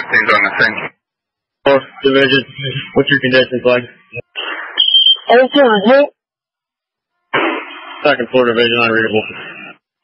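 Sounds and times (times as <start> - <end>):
rush of radio noise: 4.2 - 5.9, 7.3 - 8.3.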